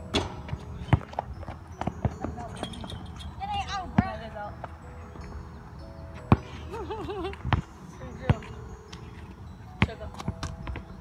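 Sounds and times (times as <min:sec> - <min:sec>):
basketball bouncing on court: 0:00.1 - 0:02.4.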